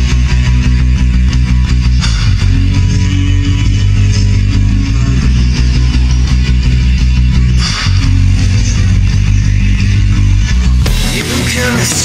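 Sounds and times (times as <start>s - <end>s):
heavy low bass notes: 0.0s - 12.0s
instrumental rock music: 0.0s - 12.0s.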